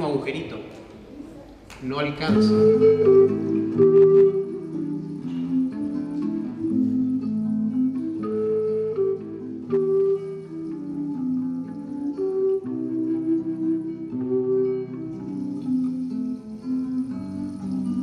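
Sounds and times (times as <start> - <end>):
wooden flute slow melody: 2.2 - 18.0.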